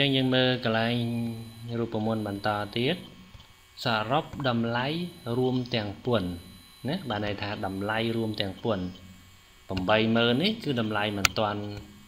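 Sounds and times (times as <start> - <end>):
man speaking: 0.0 - 3.1, 3.8 - 9.0, 9.7 - 11.9
faint electrical hum: 0.0 - 12.0.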